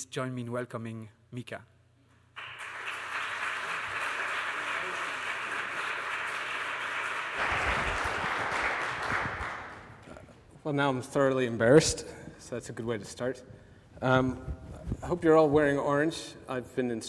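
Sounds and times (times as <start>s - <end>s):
audience applauding: 2.4s - 10.2s.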